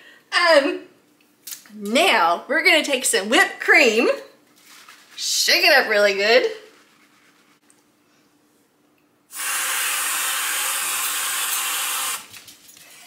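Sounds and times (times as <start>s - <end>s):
aerosol can spraying hiss: 9.3s - 12.2s.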